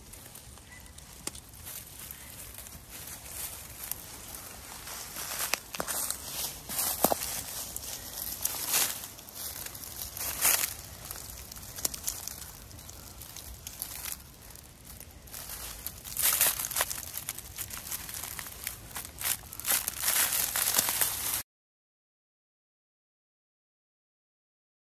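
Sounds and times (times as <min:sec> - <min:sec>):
dry leaves rustling and crackling: 0:00.0 - 0:21.4.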